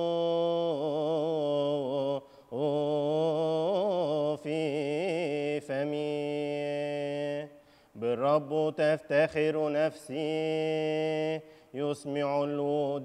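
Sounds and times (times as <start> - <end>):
man chanting solo: 8.2 - 13.0.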